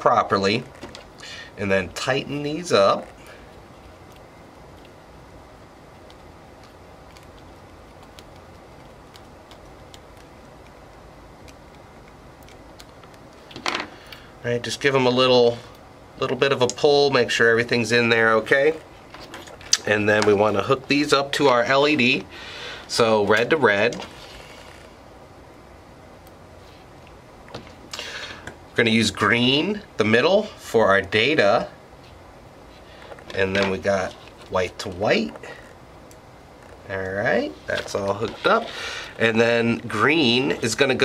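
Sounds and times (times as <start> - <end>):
steady background hiss: 0.0 - 41.0.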